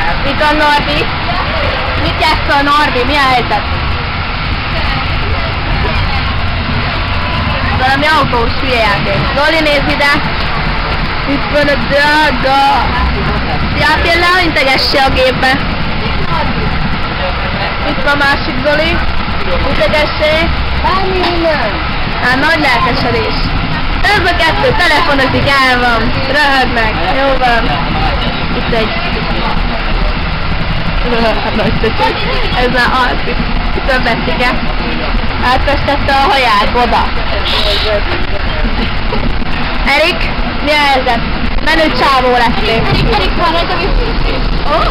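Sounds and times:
people talking faintly: 0:00.0 - 0:44.9
vehicle engine and road rumble: 0:00.0 - 0:44.9.

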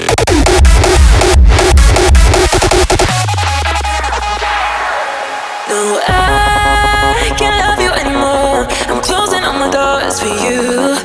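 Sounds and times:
low bass note sliding downward: 0:00.0 - 0:04.6
short synth stabs: 0:00.0 - 0:10.1.

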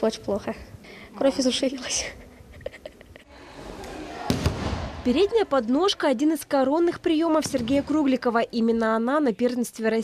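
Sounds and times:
gym room noise: 0:00.0 - 0:09.0.

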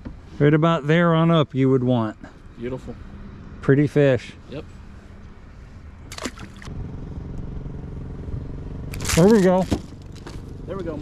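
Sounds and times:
boat motor humming: 0:04.4 - 0:11.0.

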